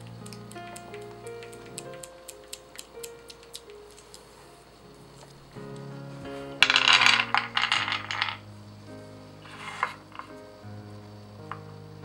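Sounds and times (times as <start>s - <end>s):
soft background music: 0.0s - 12.0s
nuts clattering onto wooden board: 6.6s - 8.4s.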